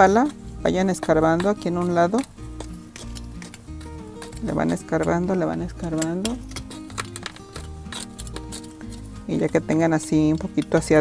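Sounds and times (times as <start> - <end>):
soft background music: 0.0 - 11.0
trowel scraping soil: 0.0 - 11.0.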